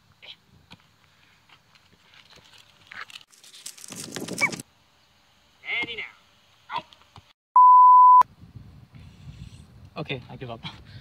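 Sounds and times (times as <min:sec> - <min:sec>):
test tone beep: 0:07.6 - 0:08.2.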